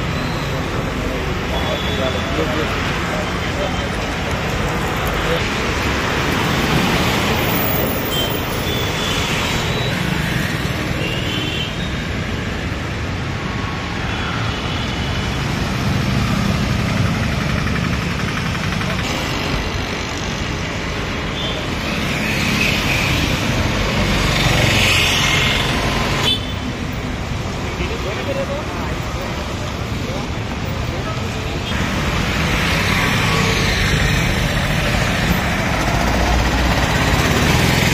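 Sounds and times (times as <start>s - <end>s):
cars passing: 0.0s - 11.0s, 12.3s - 37.9s
steady traffic hum: 0.0s - 37.9s
motorbikes passing: 15.2s - 37.9s.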